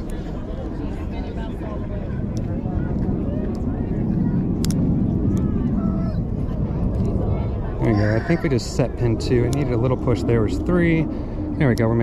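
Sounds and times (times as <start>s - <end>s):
distant crowd voices: 0.0s - 12.0s
low outdoor rumble: 0.0s - 12.0s.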